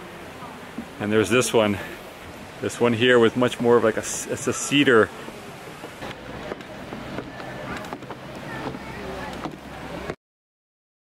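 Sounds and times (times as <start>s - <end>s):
windy hiss: 0.0s - 10.2s
footsteps on wooden stairs: 5.8s - 10.2s.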